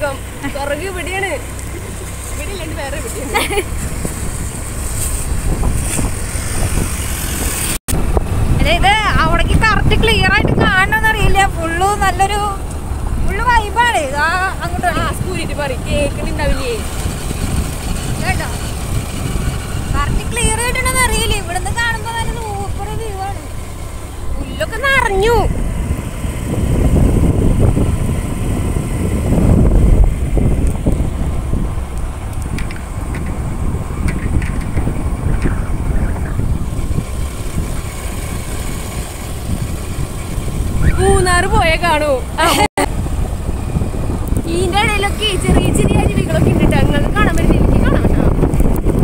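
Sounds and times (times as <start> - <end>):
road vehicle rumble: 0.0 - 49.0
wind noise: 0.0 - 49.0.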